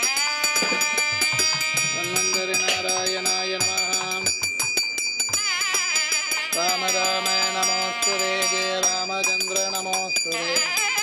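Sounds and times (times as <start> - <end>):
hand bell ringing rapidly: 0.0 - 11.0.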